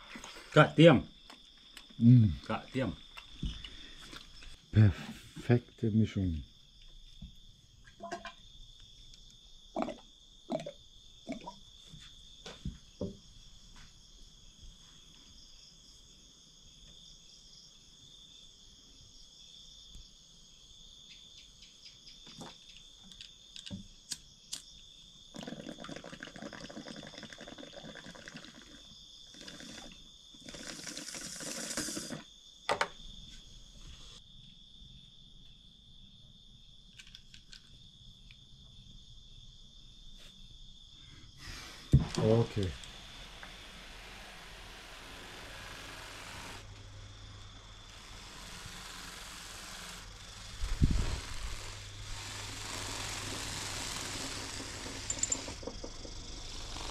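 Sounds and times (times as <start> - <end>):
crickets chirring: 0.0 - 56.9.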